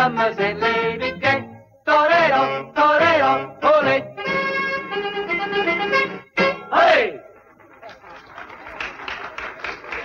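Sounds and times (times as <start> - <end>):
swing band playing: 4.2 - 7.0.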